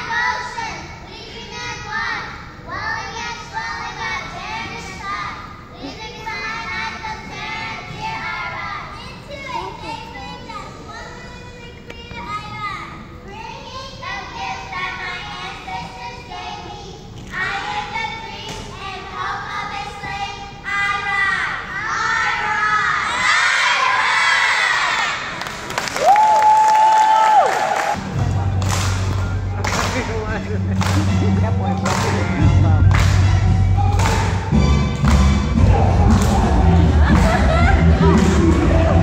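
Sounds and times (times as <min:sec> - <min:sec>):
children's voices overlapping: 0:00.0 - 0:25.4.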